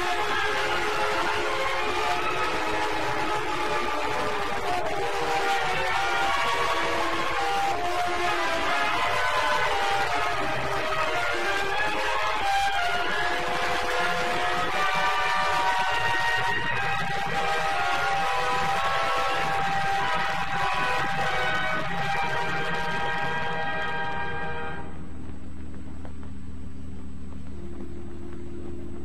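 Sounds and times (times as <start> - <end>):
film soundtrack sustained chords: 0.0 - 25.3.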